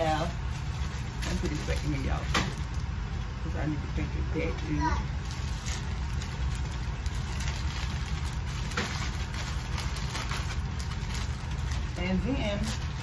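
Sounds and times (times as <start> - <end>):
rustling packaged items: 0.0 - 3.3, 5.0 - 13.0
steady low hum: 0.0 - 13.0.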